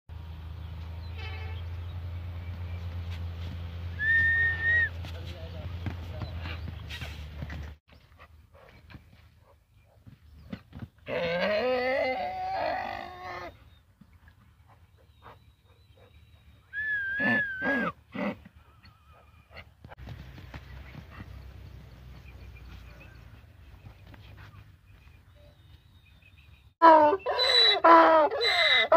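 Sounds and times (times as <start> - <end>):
donkey braying: 11.0 - 13.6, 16.7 - 19.8, 26.8 - 28.9.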